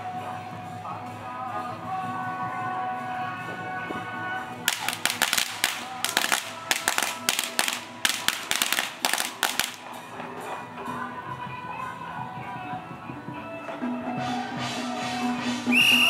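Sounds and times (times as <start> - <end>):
procession music: 0.0 - 10.0
firecrackers popping: 4.6 - 10.0.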